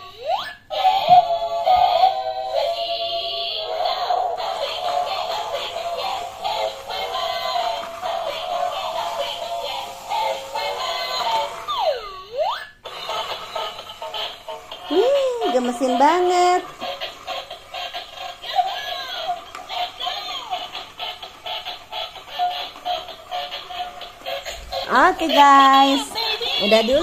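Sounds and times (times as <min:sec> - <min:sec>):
tinny electronic toy song: 0:00.0 - 0:27.0.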